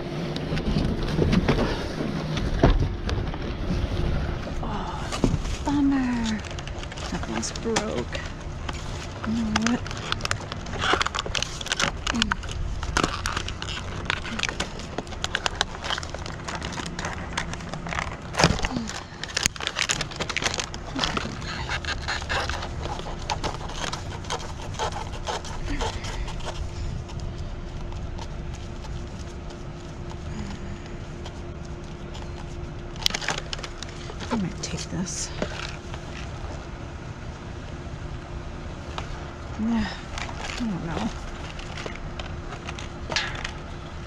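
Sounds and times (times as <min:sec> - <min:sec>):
steady low hum: 0:00.0 - 0:44.0
cardboard box scraping and crackling: 0:00.1 - 0:36.6, 0:38.8 - 0:44.0.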